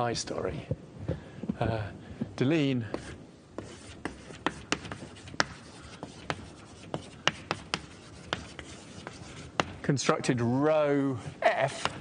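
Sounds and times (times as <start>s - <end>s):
chalk tapping on blackboard: 2.9s - 9.8s.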